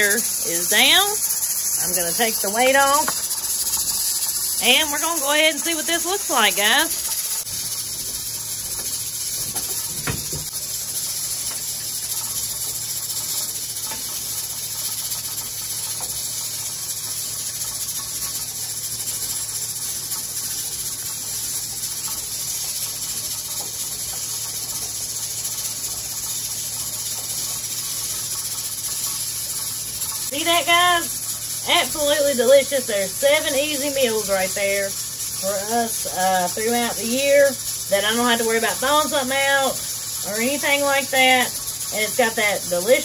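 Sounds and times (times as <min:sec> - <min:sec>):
steam hissing from pressure canner: 0:00.0 - 0:43.0.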